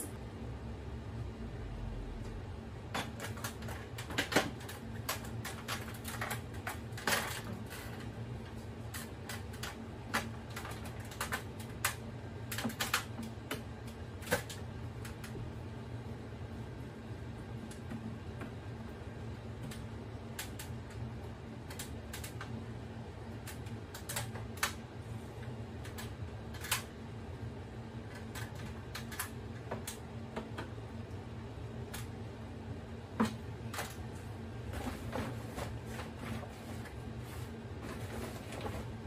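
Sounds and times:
steady low hum: 0.0 - 39.0.

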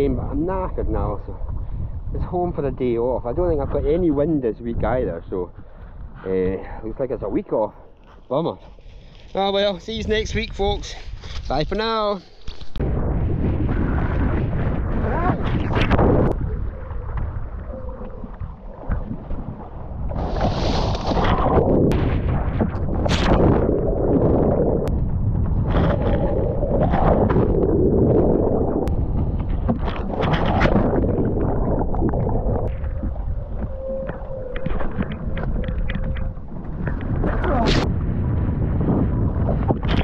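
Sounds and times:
wind rumbling on microphone: 0.0 - 40.0.

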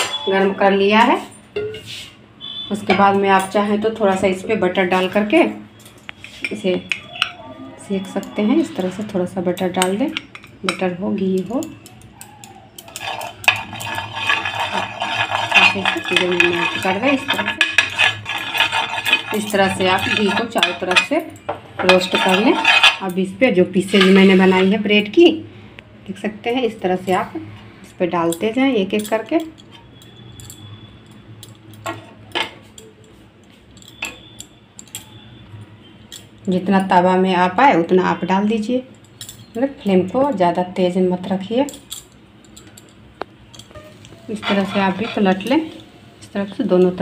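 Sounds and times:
spoon scraping and tapping a pan: 1.6 - 2.0, 5.8 - 7.4, 9.5 - 23.2, 23.9 - 24.2, 41.7 - 45.9
metal utensil clinking cookware: 8.0 - 24.7, 28.2 - 37.6, 38.9 - 40.6, 41.2 - 46.0.

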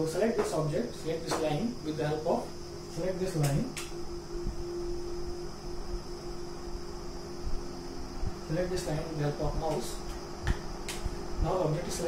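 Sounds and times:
faint steady tone: 0.0 - 12.0
room rumble and hum: 0.0 - 12.0.

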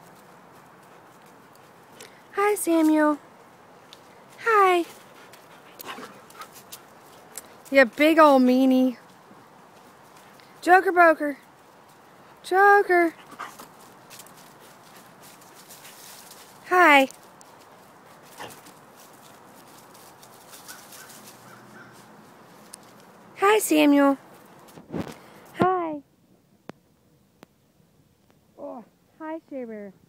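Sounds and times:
dog breathing and snuffling: 4.2 - 7.7, 13.1 - 16.5.

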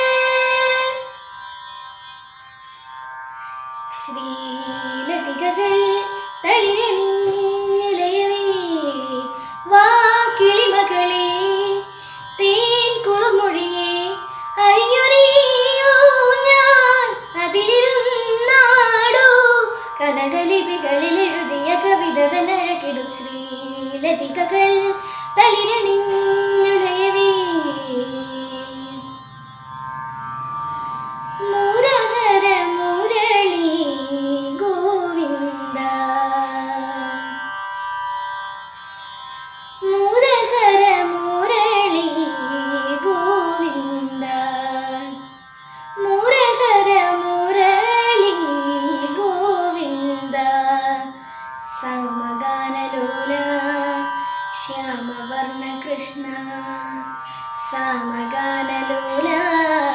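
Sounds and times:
steady drone accompaniment: 0.0 - 59.9.

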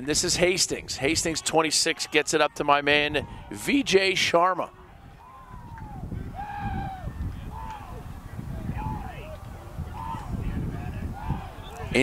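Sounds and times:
distant shouts of players: 1.1 - 3.9, 4.7 - 12.0.

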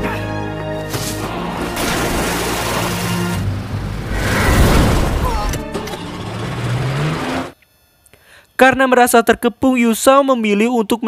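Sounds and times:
dramatic music score: 0.0 - 7.6
motorboat engine: 1.4 - 4.2
water spray and wash: 1.7 - 5.4.

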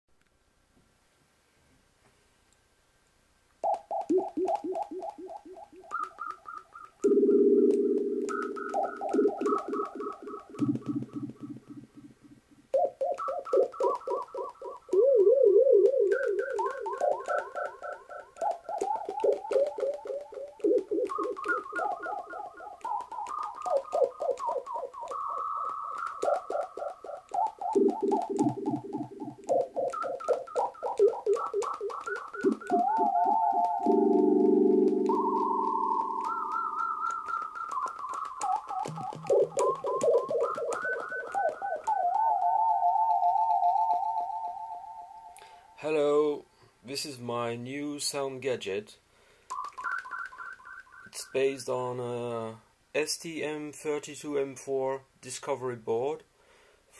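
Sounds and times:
warbling synthesizer siren tones: 12.8 - 45.1.

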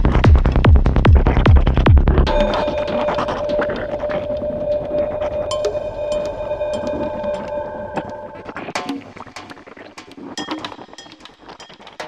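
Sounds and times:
electronic dance music: 2.3 - 8.6
glassy electronic clinks and clicks: 2.3 - 8.8.

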